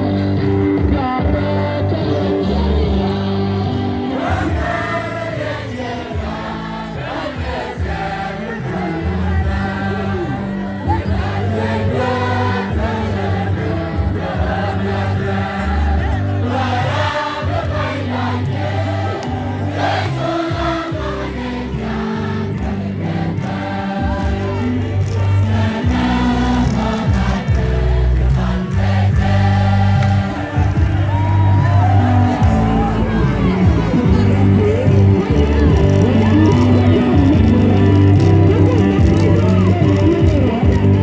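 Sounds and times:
choir singing gospel music: 0.0s - 39.8s
heavy bass line: 0.0s - 41.0s.

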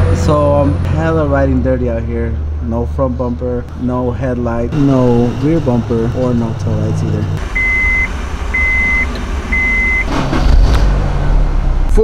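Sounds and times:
car engine starting and idling: 0.0s - 12.0s
car warning chime beeps: 7.4s - 10.1s.

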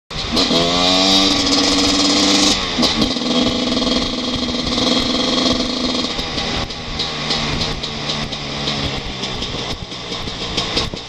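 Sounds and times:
motorcycle engine running: 0.1s - 11.0s.

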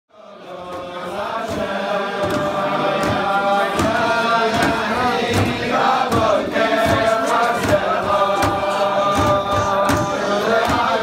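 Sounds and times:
group singing in unison: 0.1s - 11.0s.

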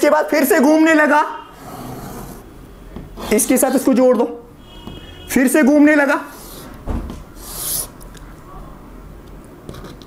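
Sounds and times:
chalk scraping on blackboard: 6.3s - 8.0s.

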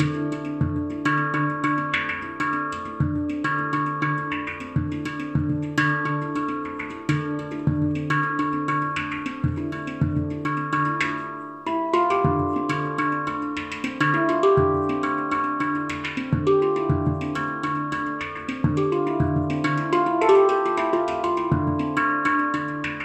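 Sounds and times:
handpan played by hand: 0.0s - 23.0s.

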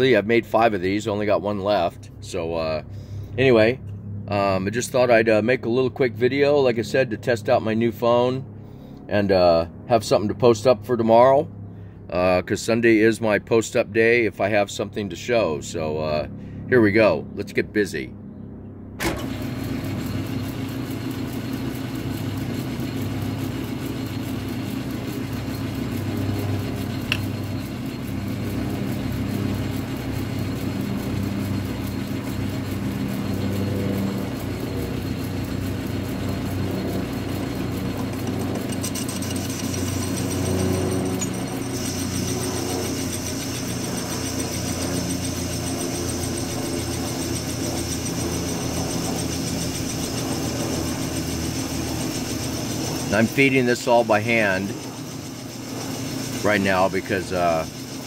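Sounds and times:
lathe cutting steel: 19.0s - 58.0s.

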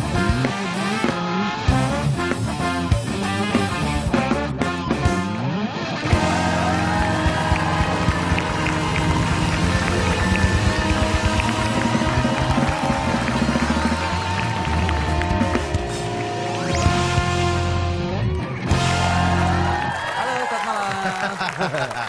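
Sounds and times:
upbeat band music: 0.0s - 22.0s
drums beating: 6.1s - 17.4s.

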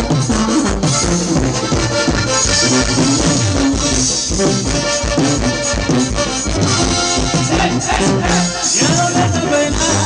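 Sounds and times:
brass band playing: 0.0s - 10.0s.

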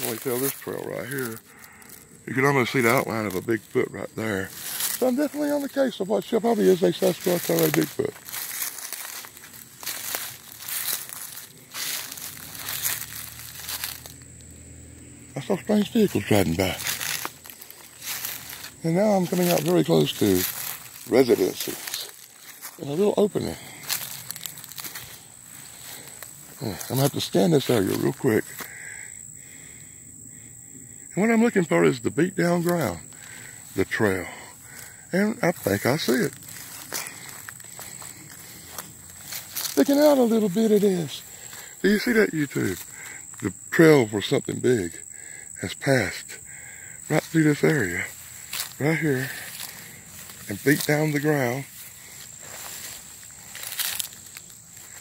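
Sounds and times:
footsteps through grass: 0.0s - 28.8s, 32.6s - 43.7s, 47.0s - 55.0s.

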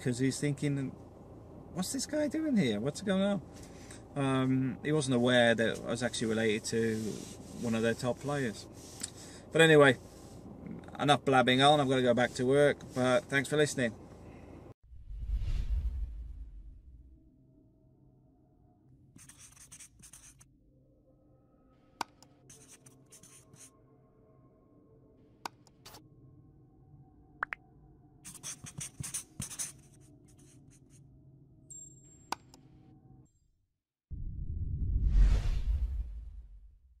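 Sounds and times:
whoosh transition: 14.9s - 17.2s, 34.2s - 36.9s
deep low rumble: 14.9s - 17.6s, 34.1s - 37.0s
marker scratching on board: 19.2s - 20.4s, 22.0s - 23.7s, 28.3s - 31.0s.

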